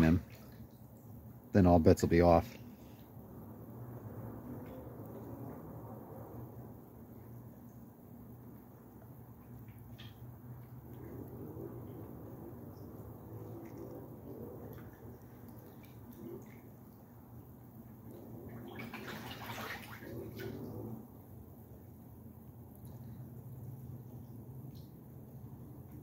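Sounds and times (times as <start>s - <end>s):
steady low hum: 0.0s - 26.0s
water bubbling from an aerator: 6.4s - 21.6s
ducks splashing: 11.8s - 21.1s.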